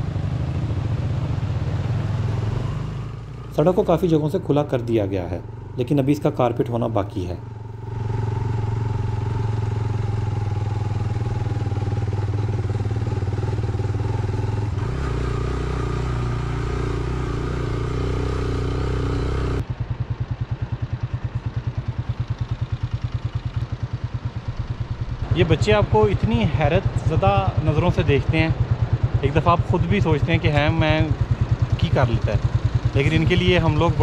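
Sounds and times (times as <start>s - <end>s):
motorcycle engine running: 0.0s - 34.0s.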